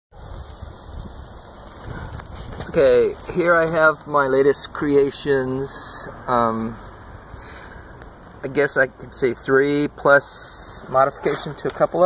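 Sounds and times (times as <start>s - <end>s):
steady hiss: 0.1s - 12.0s.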